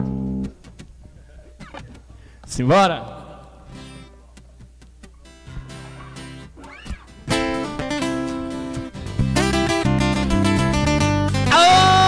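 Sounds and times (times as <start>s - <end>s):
quiet guitar picking: 0.0s - 12.0s
acoustic guitar chord: 5.2s - 12.0s.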